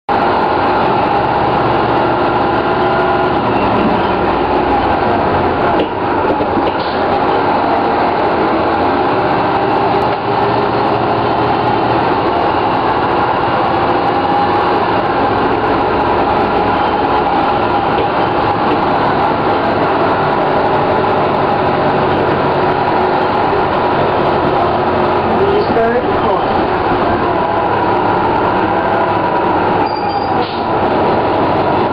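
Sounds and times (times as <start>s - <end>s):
bus diesel engine running: 0.1s - 31.9s
steady engine whine: 0.1s - 31.9s.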